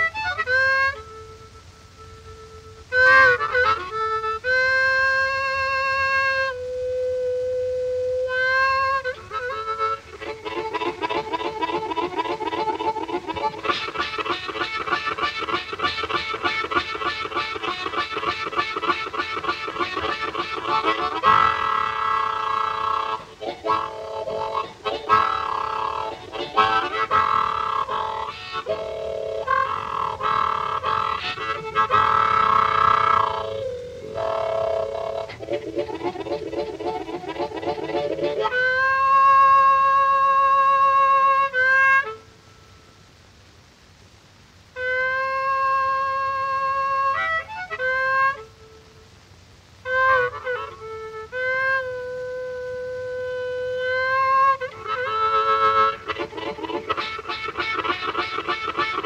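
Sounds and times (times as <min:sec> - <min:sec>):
blues harmonica chords: 0:00.0 - 0:43.8, 0:44.6 - 0:59.0.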